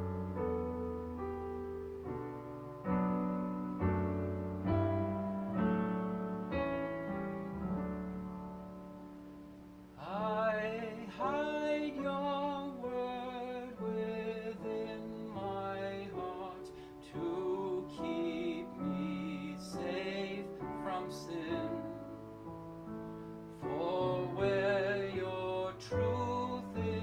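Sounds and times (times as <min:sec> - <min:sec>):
piano playing hymn chords: 0:00.0 - 0:27.0
man singing: 0:10.0 - 0:22.4, 0:23.6 - 0:27.0.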